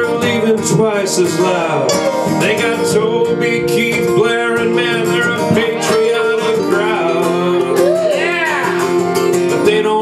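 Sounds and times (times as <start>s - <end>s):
man singing: 0.0s - 10.0s
strummed acoustic guitars: 0.0s - 10.0s.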